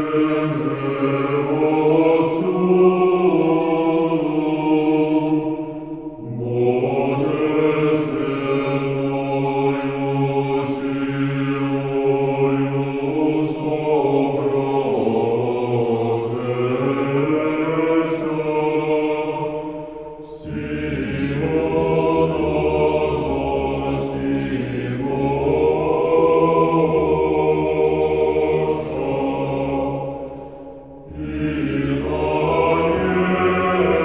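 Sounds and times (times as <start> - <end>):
male choir chanting: 0.0 - 34.0.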